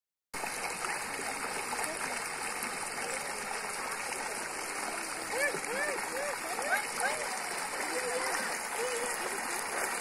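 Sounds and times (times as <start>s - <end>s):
water gushing from pipe into puddle: 0.4s - 10.0s.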